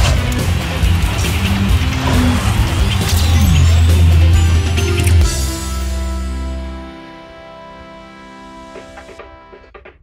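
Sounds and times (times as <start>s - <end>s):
produced theme music: 0.0s - 10.0s.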